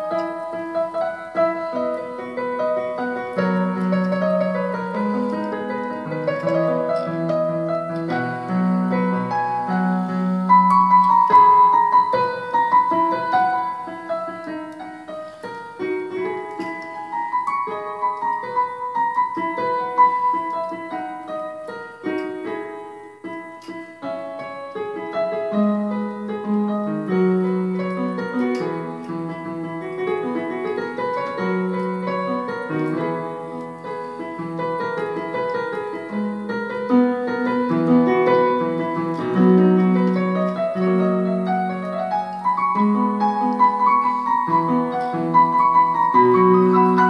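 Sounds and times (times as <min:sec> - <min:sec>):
electronic keyboard piano melody: 0:00.0 - 0:47.0.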